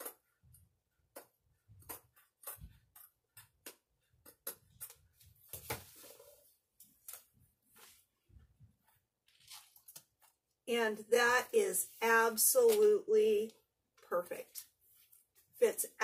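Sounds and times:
canvas rustling and crinkling: 8.8s - 10.4s.

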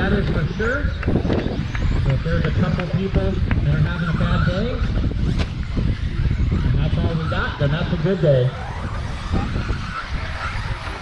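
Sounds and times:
steady rumble: 0.0s - 11.0s.

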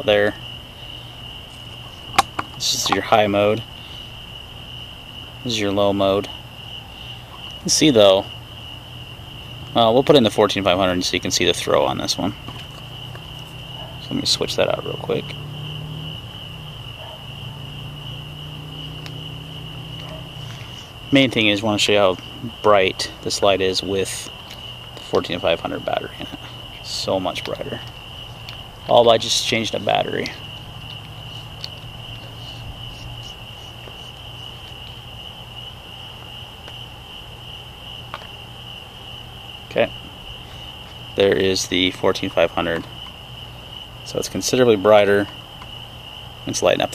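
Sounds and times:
crickets chirping: 0.0s - 46.9s.

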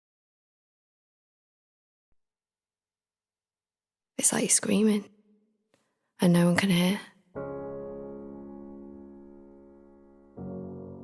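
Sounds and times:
woman speaking softly: 4.2s - 5.1s, 6.2s - 7.2s.

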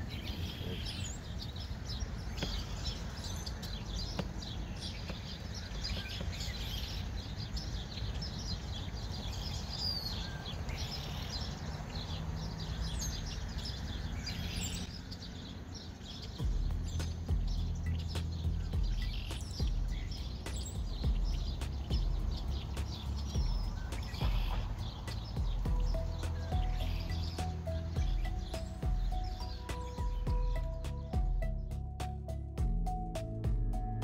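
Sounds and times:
birds chirping: 0.0s - 34.0s
low steady drone: 16.3s - 34.0s.

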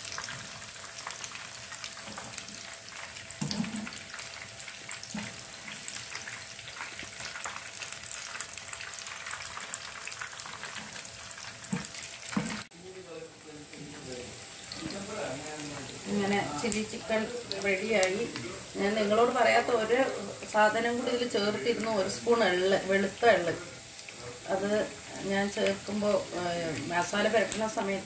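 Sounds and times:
chicken deep-frying in oil: 0.0s - 28.0s.

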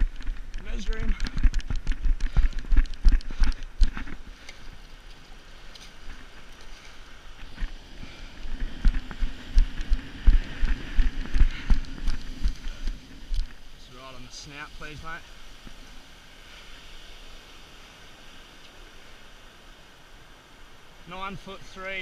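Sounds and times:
running footsteps on sand: 0.0s - 13.6s.

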